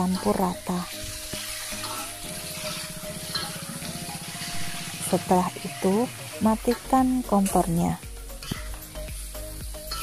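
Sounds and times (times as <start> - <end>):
food sizzling in a wok: 0.0 - 10.0
soft background music: 0.0 - 10.0.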